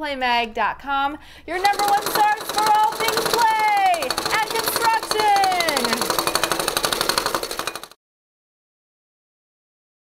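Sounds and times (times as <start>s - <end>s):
toy jackhammer rattling: 1.6s - 8.0s.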